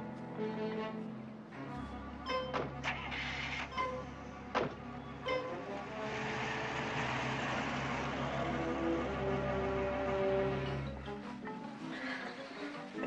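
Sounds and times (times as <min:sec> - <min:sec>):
background music: 0:00.0 - 0:13.0
car driving off: 0:02.6 - 0:11.0
sharp knocks: 0:04.5 - 0:04.9.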